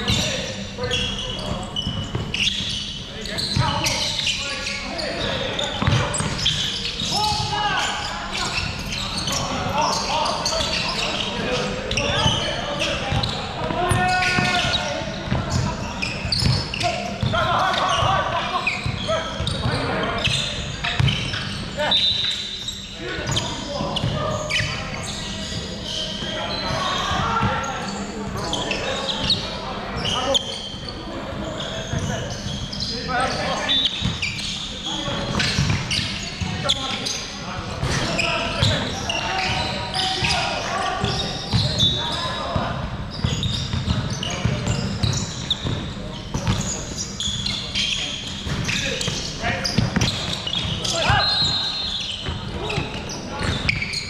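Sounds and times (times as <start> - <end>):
players calling out: 0.0 - 54.0
basketball bouncing on wooden court: 1.4 - 2.7, 5.8 - 7.4, 21.0 - 21.4, 35.3 - 36.6, 43.2 - 46.7.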